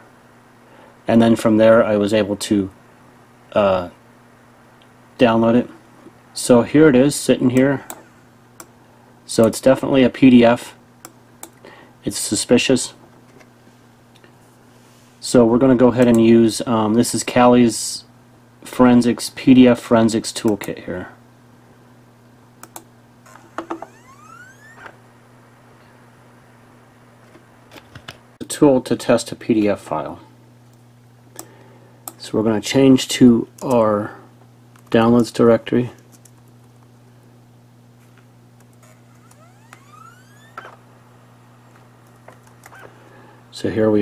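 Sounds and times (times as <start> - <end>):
faint steady hum: 0.0 - 44.0
rising whine: 23.2 - 27.4, 38.7 - 43.5
low hum: 23.2 - 27.7, 37.6 - 43.5.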